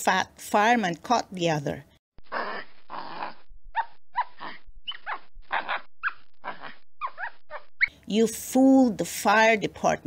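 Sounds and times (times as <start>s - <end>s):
animal yelping: 2.3s - 7.8s.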